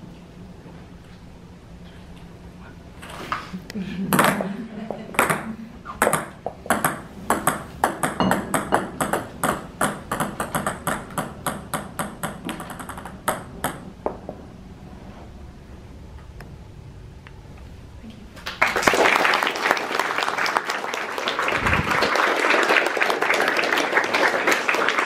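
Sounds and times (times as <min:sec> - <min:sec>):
plastic balls bouncing on hard floor: 0:05.2 - 0:14.4.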